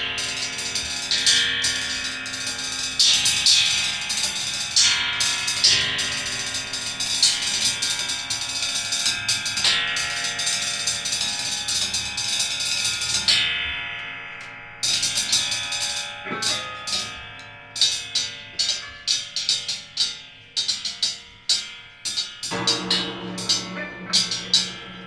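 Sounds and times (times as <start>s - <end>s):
sharp struck ringing sounds: 14.8s - 25.0s
dense sustained tone cluster: 22.5s - 25.0s.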